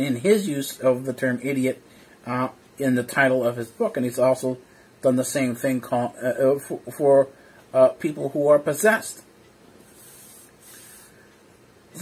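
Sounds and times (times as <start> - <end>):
soft breaths through the nose: 9.8 - 11.4.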